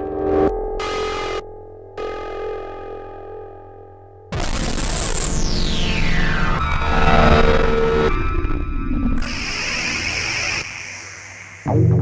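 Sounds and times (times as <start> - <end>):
synthesizer chords: 9.2 - 12.0.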